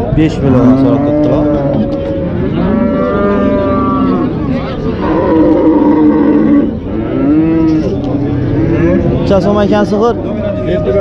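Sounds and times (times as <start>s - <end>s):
cattle mooing: 0.4s - 9.3s.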